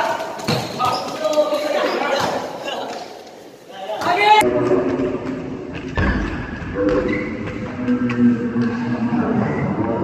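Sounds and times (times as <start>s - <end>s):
basketball bouncing on wooden court: 0.4s - 1.4s
men's voices: 6.5s - 10.0s.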